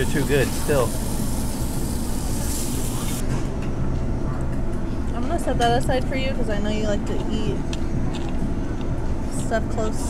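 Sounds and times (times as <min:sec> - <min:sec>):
meat sizzling on a grill: 0:00.0 - 0:03.2
exhaust hood hum and rumble: 0:00.0 - 0:10.0.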